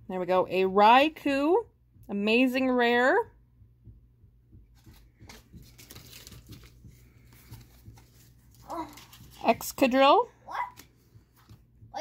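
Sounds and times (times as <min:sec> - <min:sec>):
cards and foil wrapper rustling: 0:04.8 - 0:10.0.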